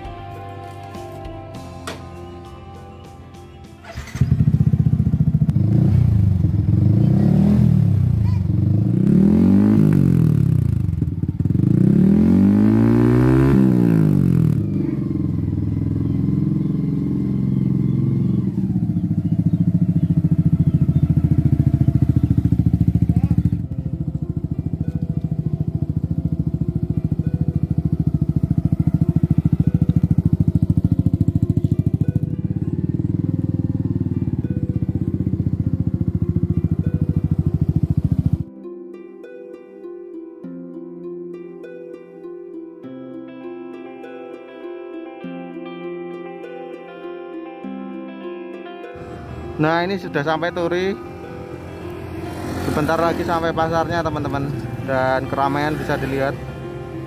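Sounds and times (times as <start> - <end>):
motorcycle engine revving: 0.0 - 38.6, 49.0 - 57.0.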